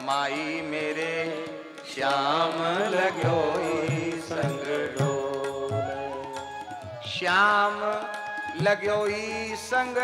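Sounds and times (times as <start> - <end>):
man singing: 0.0 - 6.4, 7.0 - 10.0.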